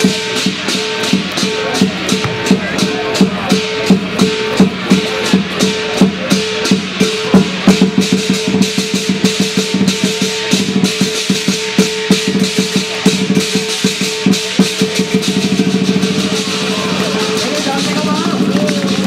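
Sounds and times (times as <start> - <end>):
big drum beating: 0.0 - 19.0
cymbals clashing: 0.0 - 19.0.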